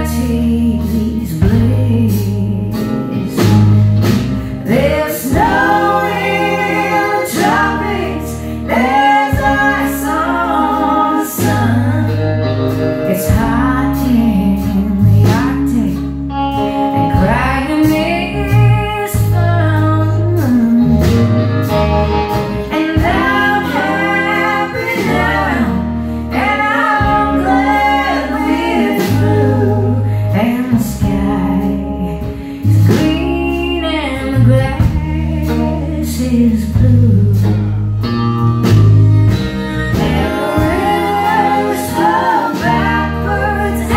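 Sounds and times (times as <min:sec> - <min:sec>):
live country band playing: 0:00.0 - 0:43.9
person singing: 0:04.6 - 0:21.8, 0:22.6 - 0:37.7, 0:39.3 - 0:43.9.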